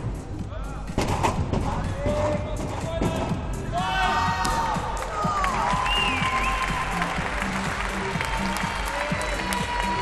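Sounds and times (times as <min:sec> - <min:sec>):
arena music: 0:00.0 - 0:10.0.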